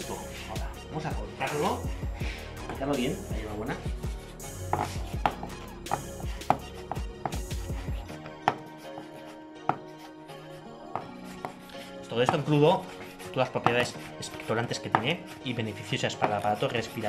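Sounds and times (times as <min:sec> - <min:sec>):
background music: 0:00.0 - 0:17.0
knife chopping on wooden board: 0:04.6 - 0:07.6, 0:08.2 - 0:08.7, 0:09.7 - 0:09.9, 0:12.2 - 0:12.6, 0:13.5 - 0:15.3, 0:16.1 - 0:16.5.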